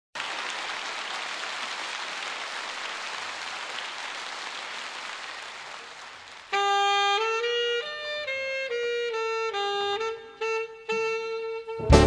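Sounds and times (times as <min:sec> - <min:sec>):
audience applauding: 0:00.2 - 0:06.8.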